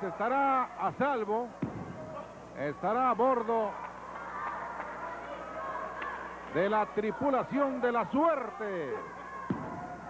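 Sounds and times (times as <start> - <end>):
faint shouts: 3.6 - 10.0.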